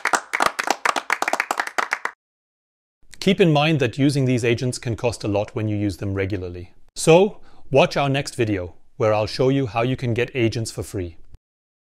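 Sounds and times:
people clapping: 0.0 - 2.2.

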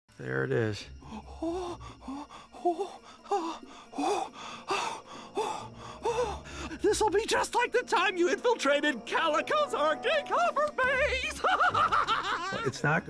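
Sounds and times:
rapid excited gasping breaths: 0.9 - 6.9.

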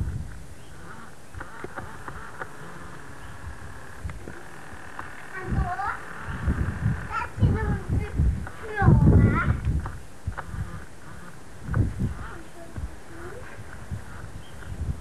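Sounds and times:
tape hiss: 0.0 - 7.2.

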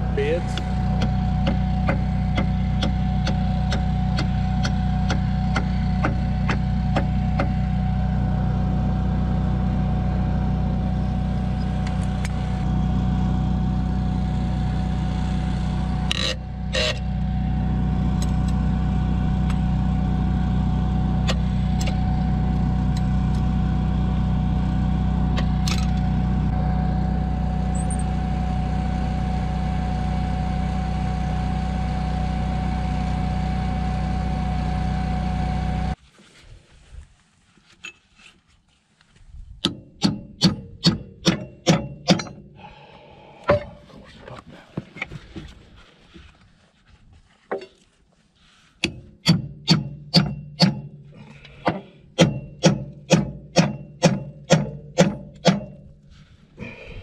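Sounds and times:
engine idling: 0.0 - 36.0.

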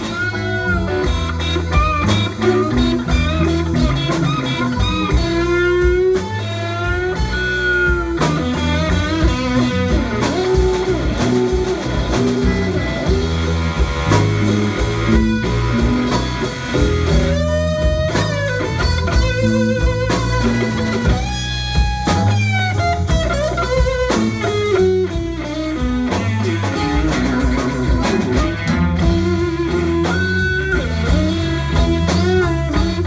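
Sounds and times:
bass guitar: 0.0 - 33.0
drum kit: 0.0 - 33.0
electric guitar lead: 0.0 - 33.0.

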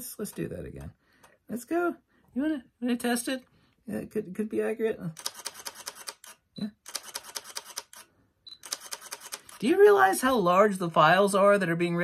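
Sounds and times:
camera shutter clicking: 5.2 - 9.6.

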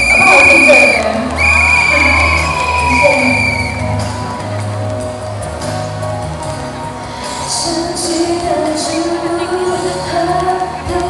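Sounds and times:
high whistle-like tone: 0.0 - 2.3, 2.9 - 3.9
pop backing track: 0.0 - 11.0
woman singing amplified: 7.3 - 11.0.

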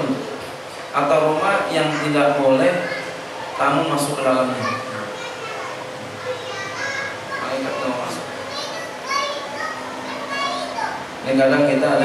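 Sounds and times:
children talking and calling out: 1.2 - 12.0.

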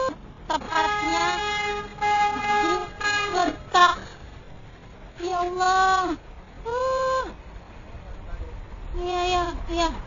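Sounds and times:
bus diesel engine idling: 0.0 - 10.0.

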